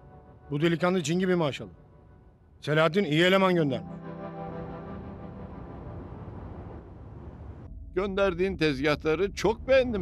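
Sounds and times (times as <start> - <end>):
faint background music: 0.0 - 6.6, 7.7 - 10.0.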